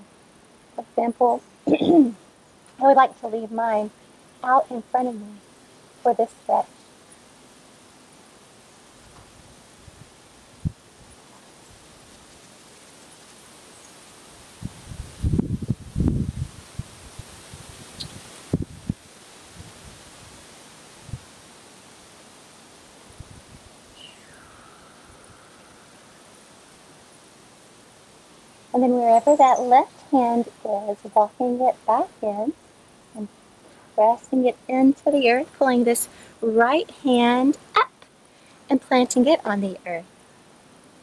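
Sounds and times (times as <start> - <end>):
outdoor background hiss: 0.0 - 41.0.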